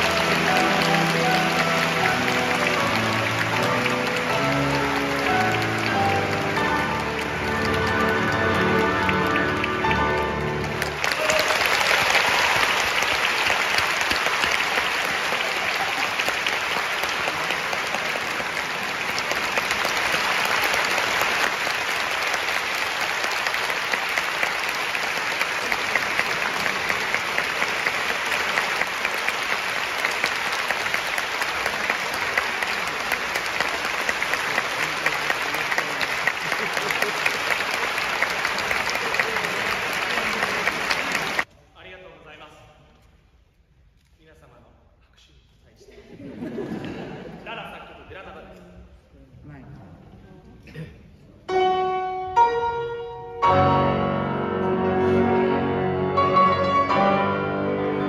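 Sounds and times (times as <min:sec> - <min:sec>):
audience applauding: 0:00.0 - 0:41.5.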